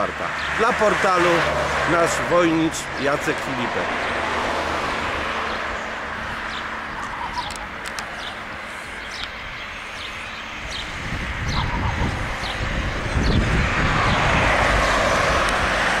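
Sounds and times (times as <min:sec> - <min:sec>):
vehicle engine and tyre noise: 0:00.0 - 0:16.0
small birds chirping: 0:04.9 - 0:14.4.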